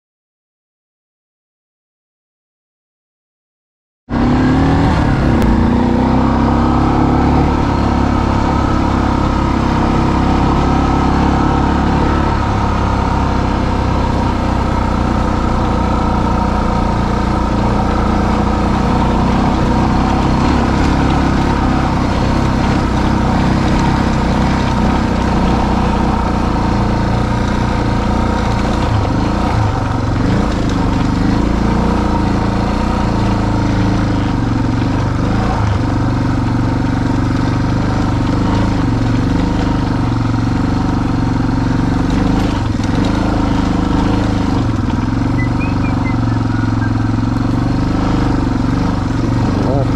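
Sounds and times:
vehicle engine running: 4.1s - 49.9s.

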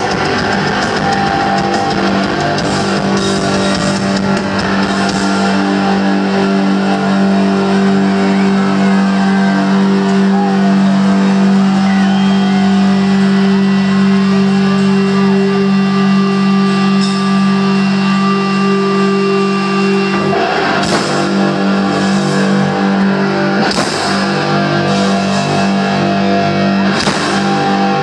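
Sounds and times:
crowd shouting and cheering: 0.0s - 28.0s
rock band holding guitar chord: 0.0s - 28.0s.

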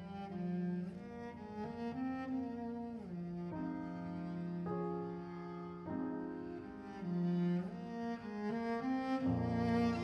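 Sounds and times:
cello bowing melody: 0.0s - 10.0s.

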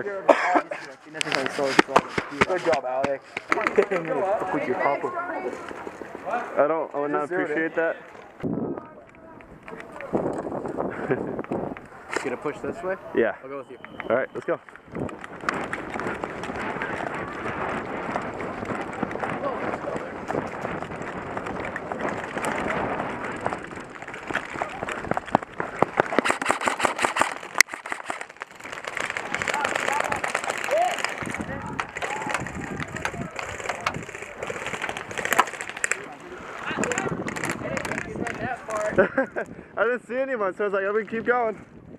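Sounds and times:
voices: 0.0s - 26.0s, 29.0s - 41.6s
gear rattling and rubbing: 15.0s - 38.9s
sharp clicks: 23.5s - 36.1s.

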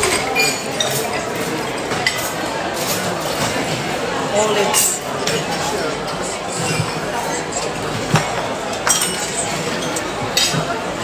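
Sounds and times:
tableware clinking: 0.0s - 3.7s, 4.5s - 11.0s
murmur of diners talking: 0.0s - 11.0s.

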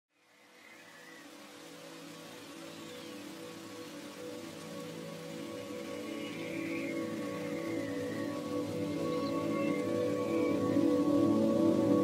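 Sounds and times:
rain-like hiss: 0.1s - 12.0s
soft ambient music: 0.2s - 12.0s.

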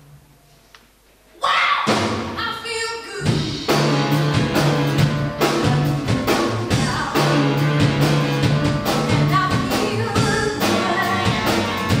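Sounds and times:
woman singing: 2.4s - 3.4s, 5.5s - 7.5s, 9.1s - 12.0s
drum hits: 3.2s - 12.0s
live band playing soul: 3.2s - 12.0s.

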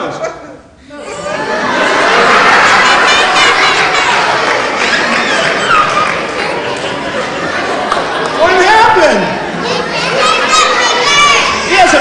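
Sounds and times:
audience laughing and exclaiming: 0.0s - 12.0s.

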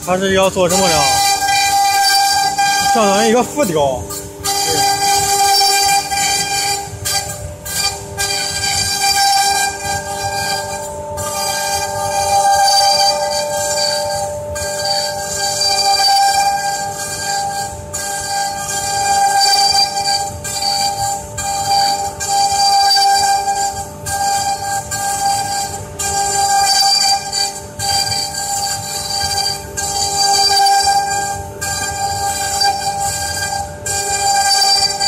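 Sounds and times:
cnc router spindles whining: 0.0s - 35.0s
router cutting wood: 0.0s - 35.0s.

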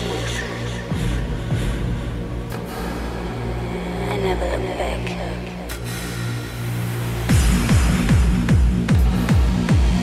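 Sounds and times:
electronic dance music: 6.8s - 10.0s.

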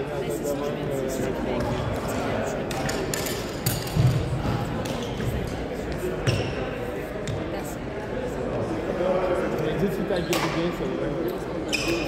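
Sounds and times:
echoing background voices: 0.0s - 11.7s.

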